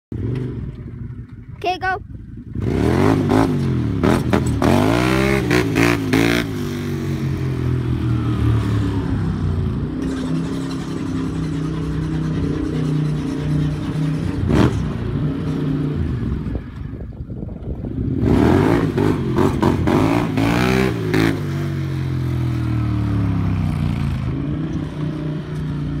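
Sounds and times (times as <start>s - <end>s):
quad engine revving: 2.5s - 16.8s, 17.8s - 26.0s.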